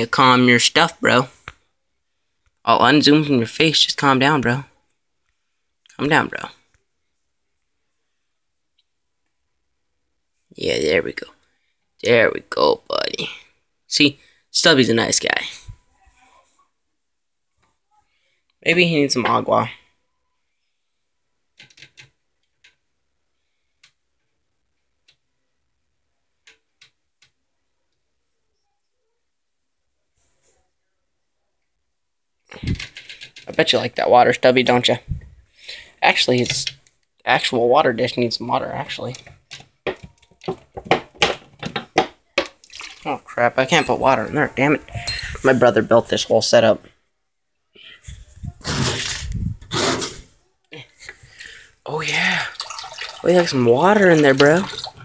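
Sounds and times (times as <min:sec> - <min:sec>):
rubbing and scraping on microphone: 0:43.0 - 0:46.3, 0:48.0 - 0:50.4
spray bottle spritzes: 0:48.6 - 0:50.3.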